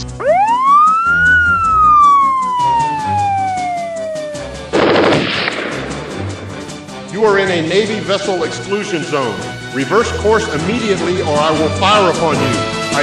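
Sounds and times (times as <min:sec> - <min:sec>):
electronic siren warning tone: 0:00.0 - 0:04.8
background music: 0:00.0 - 0:13.0
machine-gun fire through hailer: 0:04.6 - 0:07.0.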